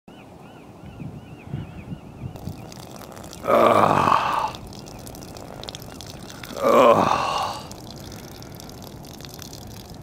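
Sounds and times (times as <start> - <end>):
stream of liquid splashing: 2.4 - 10.0.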